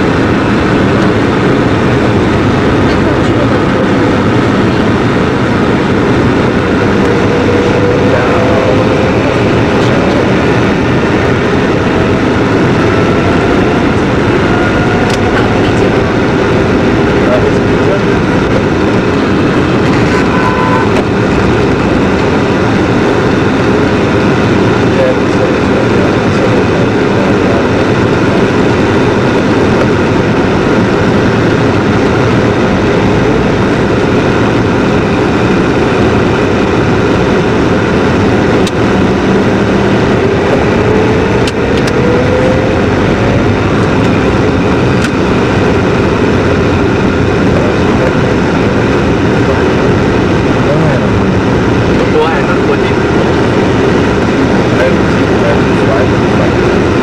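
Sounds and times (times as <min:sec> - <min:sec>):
car cabin road and engine noise: 0:00.0 - 0:57.0
rising whine: 0:00.0 - 0:57.0.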